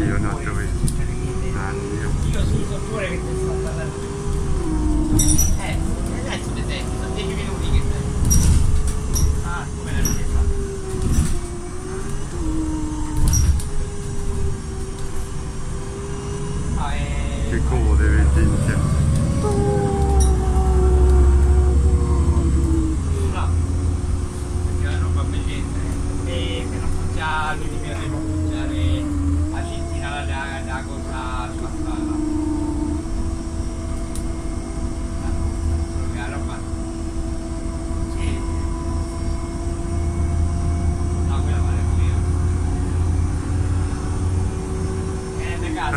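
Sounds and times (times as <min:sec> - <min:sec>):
rattles and clicks in cabin: 0:00.0 - 0:12.4, 0:13.0 - 0:15.6, 0:22.5 - 0:32.2
bus drivetrain humming: 0:00.0 - 0:45.9
low road rumble: 0:00.0 - 0:45.9.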